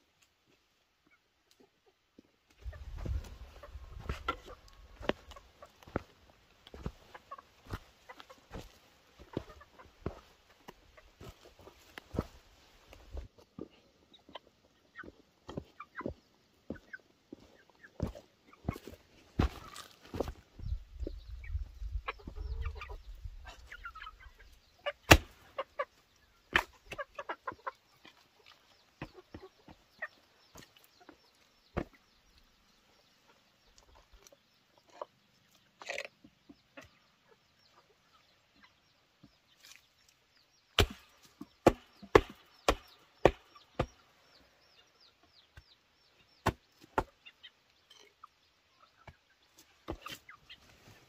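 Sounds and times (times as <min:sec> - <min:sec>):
chickens clucking: 0:00.6 - 0:51.0.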